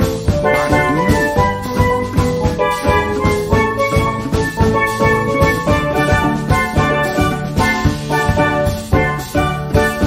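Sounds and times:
upbeat tune with drum beat: 0:00.0 - 0:10.0.

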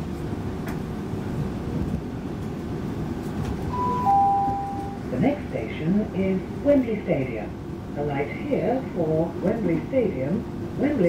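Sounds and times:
train rumbling on rails: 0:00.0 - 0:11.0
announcement chime: 0:03.7 - 0:05.1.

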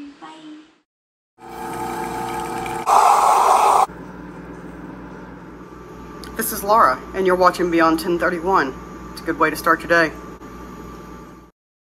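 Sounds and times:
espresso machine pump humming: 0:01.4 - 0:04.7
loud noisy burst: 0:02.9 - 0:03.9.

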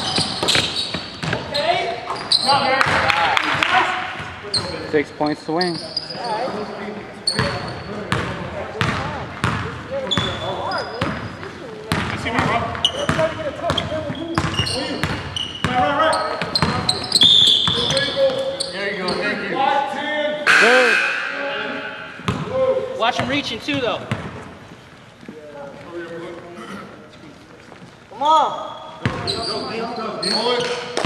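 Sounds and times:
sneaker squeaks: 0:00.0 - 0:02.8, 0:04.2 - 0:19.4, 0:27.6 - 0:31.0.

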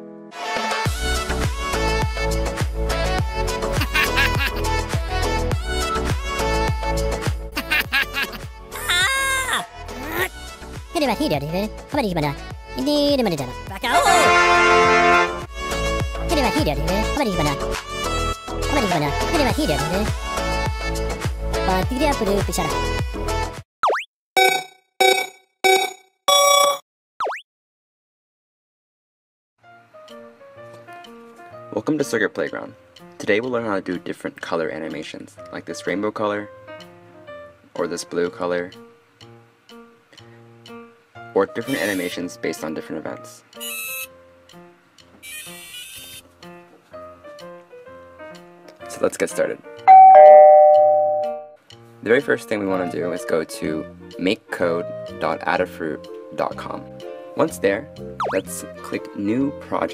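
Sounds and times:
faint background music: 0:08.7 - 0:15.2, 0:16.3 - 0:17.8, 0:18.6 - 0:20.2, 0:30.0 - 0:45.4, 0:48.3 - 0:50.2, 0:51.6 - 0:59.9
bell-like dings: 0:49.9 - 0:51.6
electronic two-note chime: 0:49.9 - 0:51.6.

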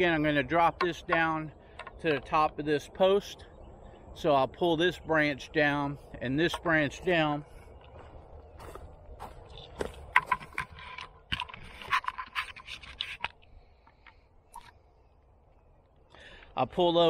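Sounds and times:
scraping and rubbing close up: 0:10.2 - 0:14.7.

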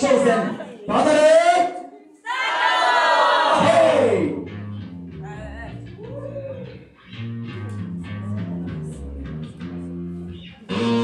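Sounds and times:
crowd noise: 0:00.0 - 0:04.6, 0:05.2 - 0:11.0
music with low bass line: 0:03.7 - 0:11.0.

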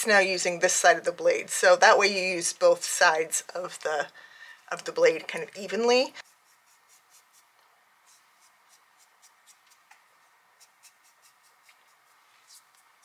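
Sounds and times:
razor blade scraping skin: 0:06.2 - 0:07.5, 0:08.1 - 0:10.0, 0:10.6 - 0:12.9.

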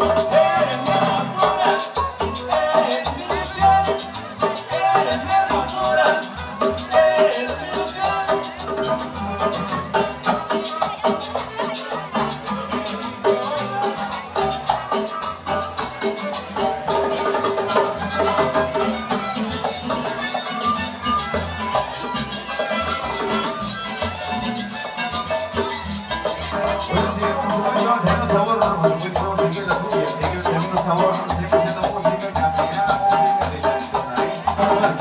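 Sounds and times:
deep plucked bass: 0:00.0 - 0:35.0
rattling percussion beat: 0:00.0 - 0:35.0
string band playing dance music: 0:00.0 - 0:35.0.

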